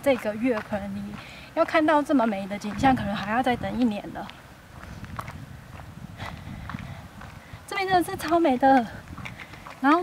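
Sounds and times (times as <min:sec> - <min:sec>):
soft footsteps on a path: 0:00.0 - 0:10.0.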